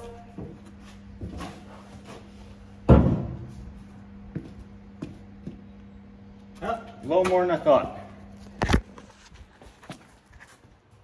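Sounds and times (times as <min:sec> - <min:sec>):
heavy metal block thud: 0:02.9 - 0:03.5.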